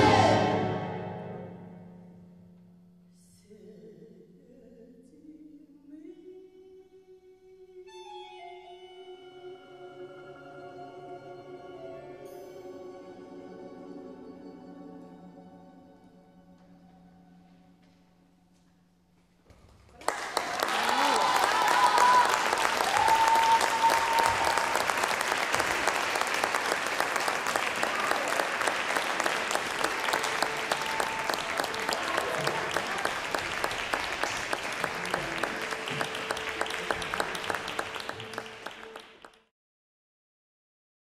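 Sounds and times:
audience applauding: 19.9 - 39.5.

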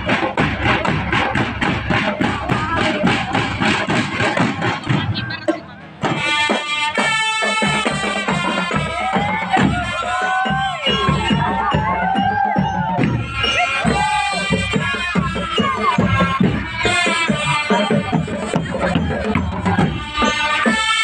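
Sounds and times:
band melody: 0.0 - 21.0
steady drum beat: 0.0 - 21.0.

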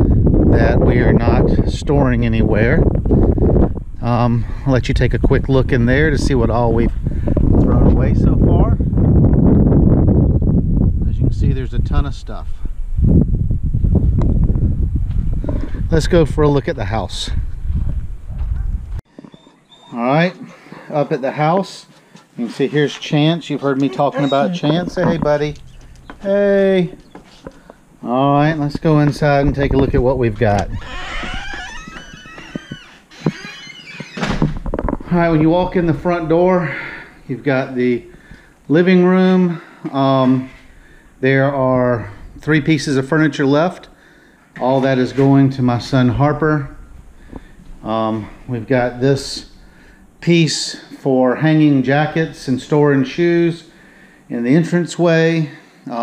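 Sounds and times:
wind buffeting microphone: 0.0 - 19.0, 24.6 - 33.4, 34.2 - 36.6
door creaking: 22.4 - 27.6, 30.4 - 35.2.

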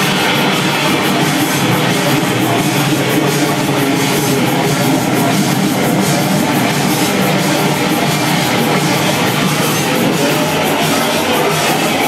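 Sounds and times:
distorted experimental noise music: 0.0 - 12.0.

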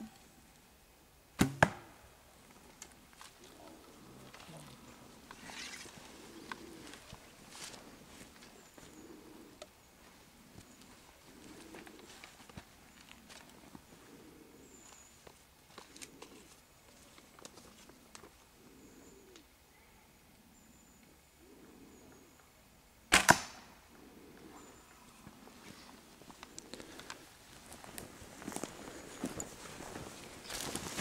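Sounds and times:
arrow striking foam target: 1.4 - 1.9.

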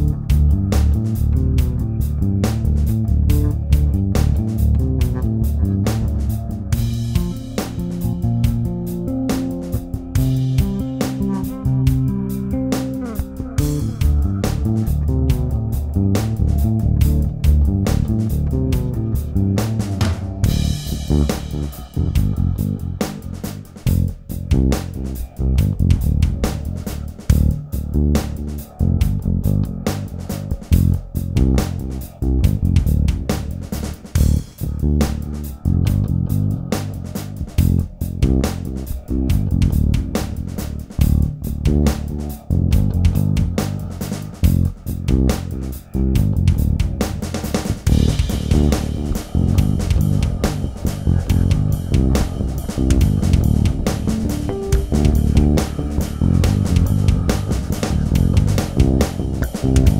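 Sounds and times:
electric bass played fingerstyle: 0.0 - 59.9.

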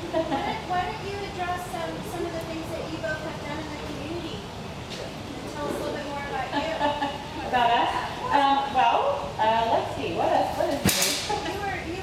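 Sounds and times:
woman laughing: 0.0 - 0.8, 6.4 - 7.6.

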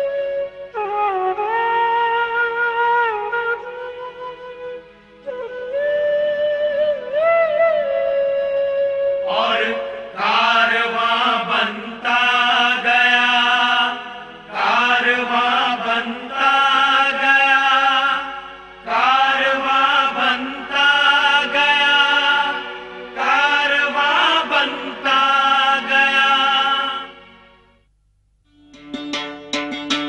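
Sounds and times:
chant-like singing: 9.2 - 27.3.

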